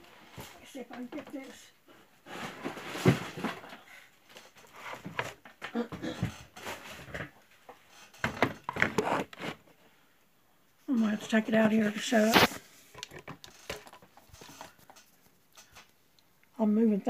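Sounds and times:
household objects rustling and knocking: 0.0s - 9.8s, 11.1s - 16.0s.

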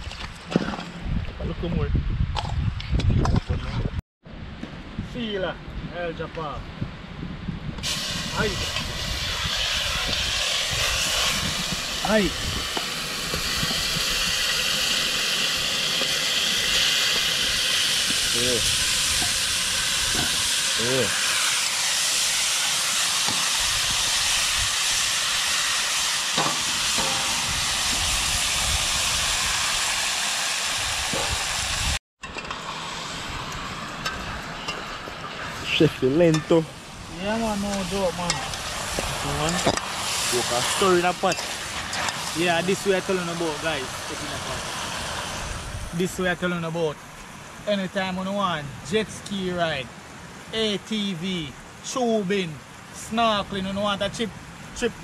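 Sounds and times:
meat sizzling in a pot: 7.8s - 35.0s, 35.6s - 46.3s.

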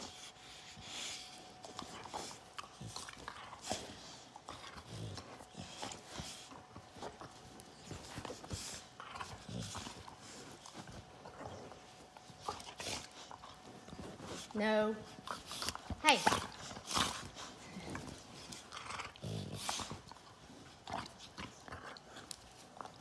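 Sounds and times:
dogs scuffling on couch: 0.0s - 23.0s
dog growling low: 16.8s - 20.1s.

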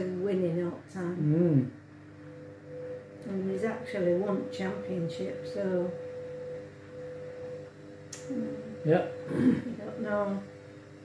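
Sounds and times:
washing machine humming: 0.0s - 11.0s.

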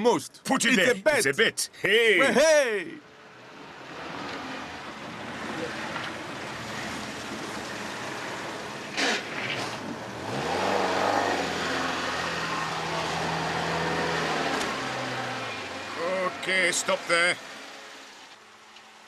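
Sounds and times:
outdoor background noise: 0.0s - 19.0s
van engine driving up: 2.4s - 19.0s.

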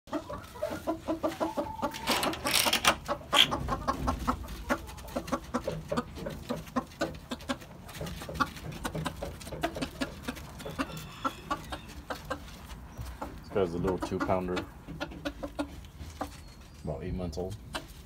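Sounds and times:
chickens clucking: 0.1s - 18.0s.

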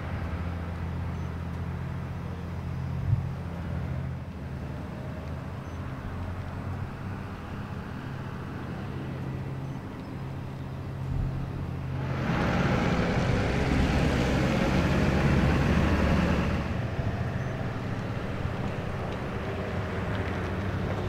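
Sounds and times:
passing vehicle road noise: 0.0s - 21.0s.

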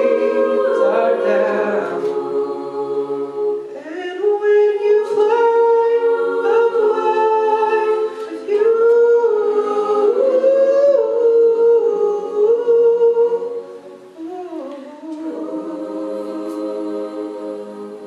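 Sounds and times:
backing vocal chords: 0.0s - 18.0s.

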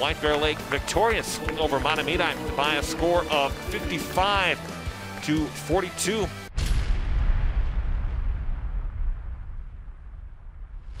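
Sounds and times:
deep cinematic boom: 6.5s - 11.0s.

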